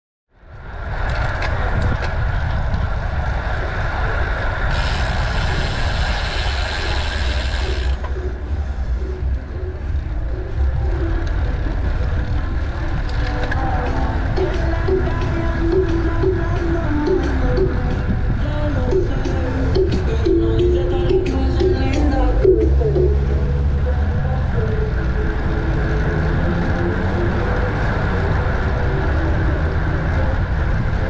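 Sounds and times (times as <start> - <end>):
tyre and road noise: 0.3 - 31.0
wind buffeting microphone: 0.4 - 31.0
bicycle freewheel ticking: 4.7 - 8.1
high hiss: 4.8 - 8.0.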